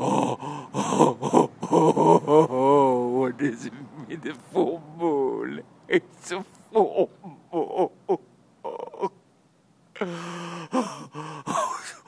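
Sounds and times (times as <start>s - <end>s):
man moaning and groaning: 0.0s - 6.1s, 6.7s - 9.2s, 10.0s - 12.0s
man speaking: 2.3s - 9.2s.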